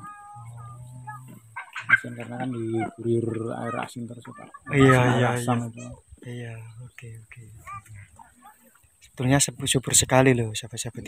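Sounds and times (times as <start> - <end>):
chicken calling: 0.0 - 6.1.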